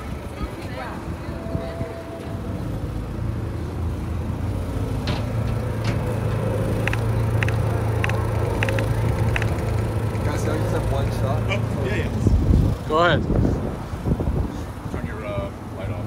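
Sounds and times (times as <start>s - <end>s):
vehicle engine running: 0.0s - 14.7s.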